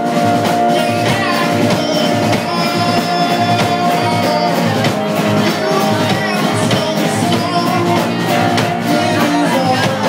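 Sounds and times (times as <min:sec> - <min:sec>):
drum kit beating: 0:00.0 - 0:10.0
electric guitar: 0:00.0 - 0:10.0.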